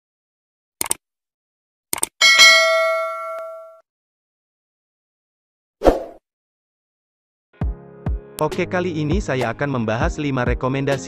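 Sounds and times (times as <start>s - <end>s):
notification bell ringing: 2.2s - 3.8s.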